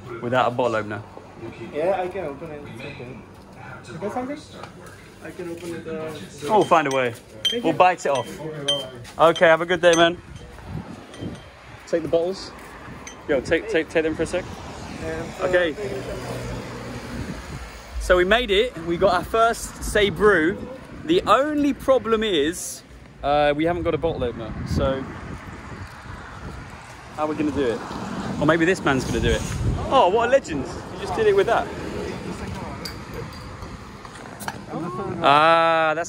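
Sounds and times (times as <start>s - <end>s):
street noise: 0.0s - 36.0s
vehicle engine humming: 9.2s - 28.8s.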